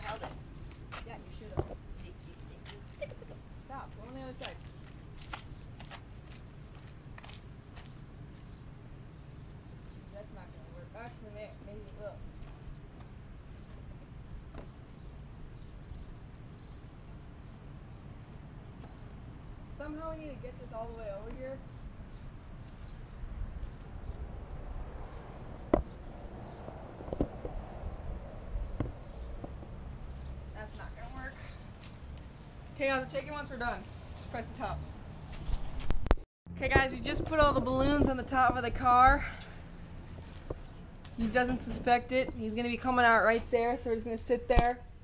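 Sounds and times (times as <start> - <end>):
footsteps on asphalt: 0.0 - 3.2, 3.8 - 8.6, 28.6 - 32.8, 35.2 - 36.1, 39.4 - 41.2
wind rumble on microphone: 22.8 - 31.2, 35.4 - 39.3.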